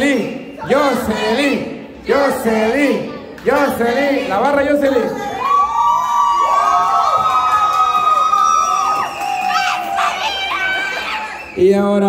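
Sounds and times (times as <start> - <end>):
people shouting: 5.2 - 11.4
crowd cheering and screaming: 5.3 - 11.7
long high-pitched screams: 5.4 - 11.6.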